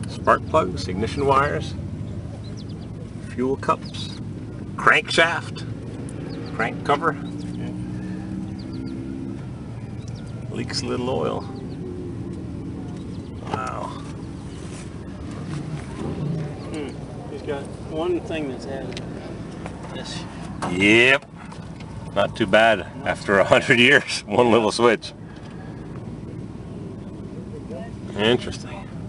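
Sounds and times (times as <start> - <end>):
faint voices: 0.0 - 29.0
low steady rumble: 0.0 - 29.0.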